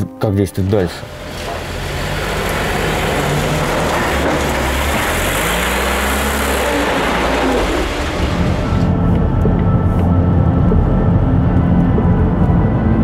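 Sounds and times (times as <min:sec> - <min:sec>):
vehicle engine running: 0:01.0 - 0:13.0.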